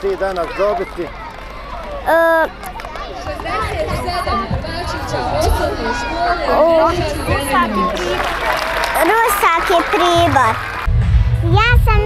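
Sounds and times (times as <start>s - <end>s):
children chattering: 0.0s - 10.8s.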